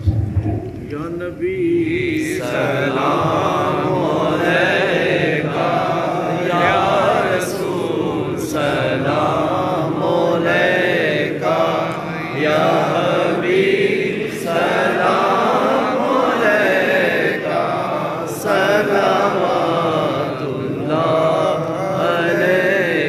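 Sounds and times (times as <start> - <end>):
men chanting: 0.9 - 23.0.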